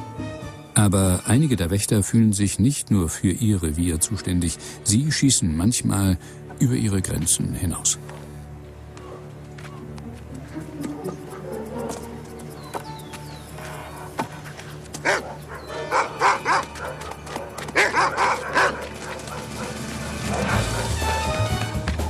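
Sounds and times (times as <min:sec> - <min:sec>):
background music: 0:00.0 - 0:22.0
dogs barking: 0:09.0 - 0:09.8, 0:10.4 - 0:21.5.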